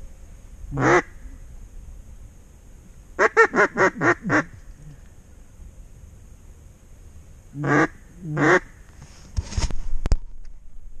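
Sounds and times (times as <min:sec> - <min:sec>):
duck call quacks: 0:00.7 - 0:01.2, 0:03.2 - 0:04.5, 0:07.6 - 0:08.7
knocks and rustles near microphone: 0:09.0 - 0:10.6.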